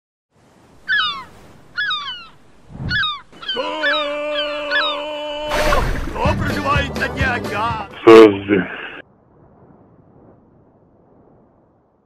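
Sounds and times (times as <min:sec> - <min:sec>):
gulls calling: 0:00.7 - 0:07.7.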